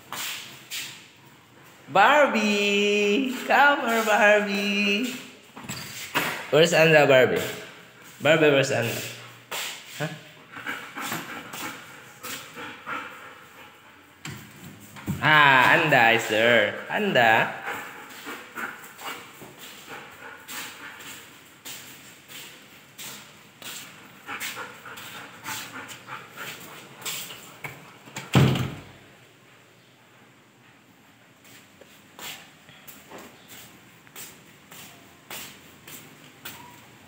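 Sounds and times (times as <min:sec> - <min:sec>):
wooden door shutting: 0:28.1 - 0:28.9.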